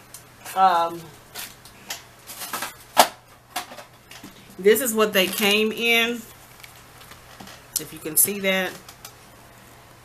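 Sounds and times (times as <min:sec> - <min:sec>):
packaging rustling: 0:06.3 - 0:07.7.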